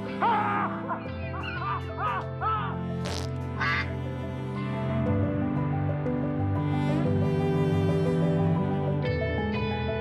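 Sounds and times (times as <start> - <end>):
background music: 0.0 - 10.0
cartoon bird squawks: 3.6 - 3.9.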